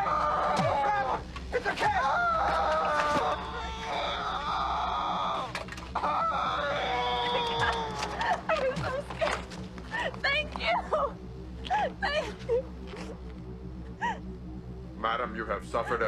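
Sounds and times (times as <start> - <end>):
person screaming: 1.8 - 8.5.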